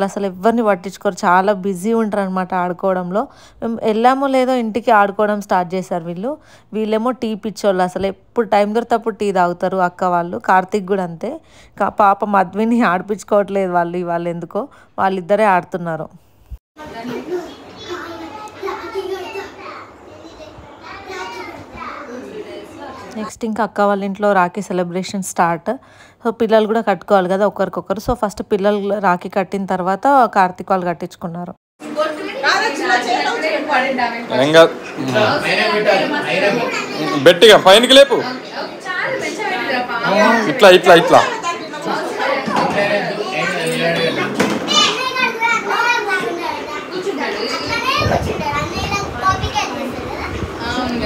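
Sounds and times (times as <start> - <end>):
young children talking and playing: 16.8 - 23.5, 31.8 - 51.0.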